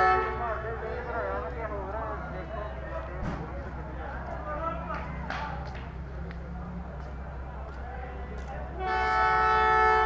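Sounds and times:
locomotive air horn blast: 0.0 - 0.6, 8.7 - 10.0.

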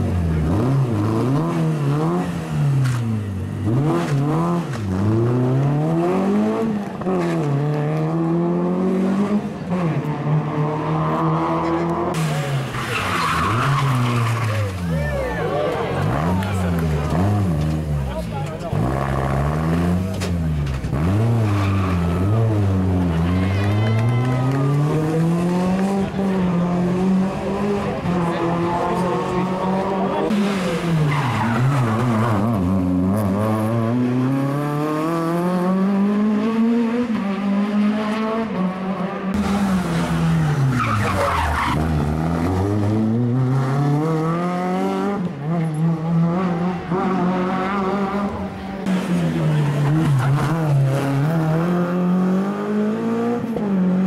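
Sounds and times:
rally car engine revving: 0.0 - 54.0.

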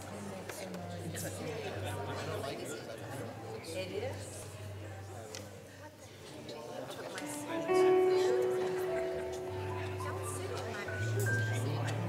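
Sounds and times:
congregation chattering quietly: 0.0 - 12.0.

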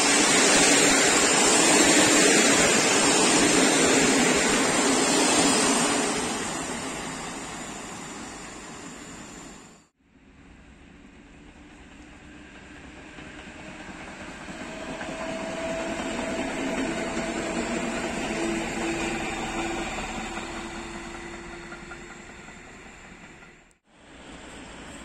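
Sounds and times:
train hum: 0.0 - 25.0
train wheels on rails: 0.0 - 25.0.

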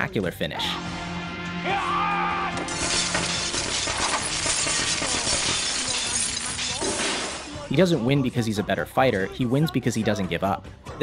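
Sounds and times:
glass shattering: 2.6 - 7.8.

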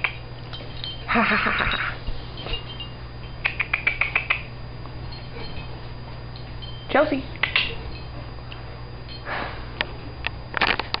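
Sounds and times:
sharp clicks: 3.4 - 4.5, 7.4 - 7.7
breathy puff: 9.2 - 9.8.

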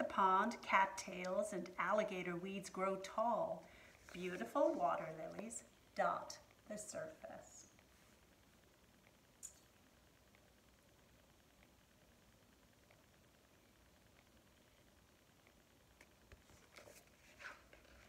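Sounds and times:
faint rustles and taps: 16.0 - 18.0.

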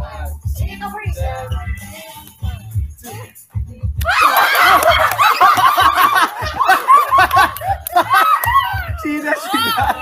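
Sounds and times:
young people laughing and squealing: 4.0 - 10.0.

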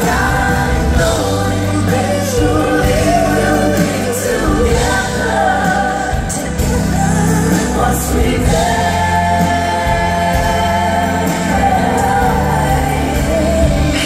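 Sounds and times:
band with keyboards and bass: 0.0 - 14.0
people singing in harmony: 0.0 - 14.0.

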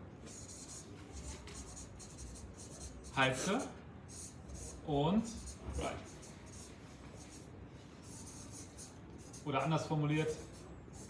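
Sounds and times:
marker scratching on paper: 0.2 - 11.0.

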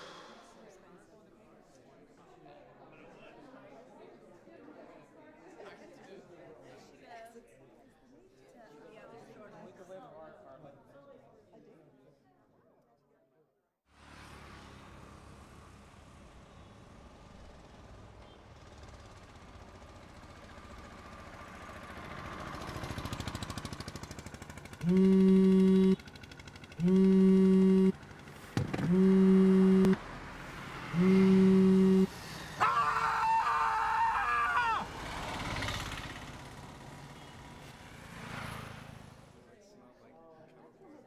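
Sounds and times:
mobile phone vibrating: 24.8 - 26.0, 26.8 - 27.9, 28.8 - 30.0, 30.9 - 32.1.

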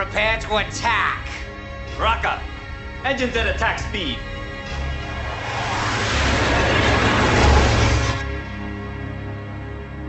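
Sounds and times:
spaceship engines rushing by: 4.6 - 8.8.

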